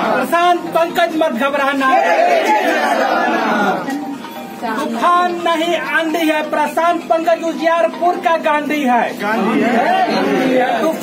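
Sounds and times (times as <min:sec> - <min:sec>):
crowd chanting: 0:01.8 - 0:03.9, 0:09.4 - 0:11.0.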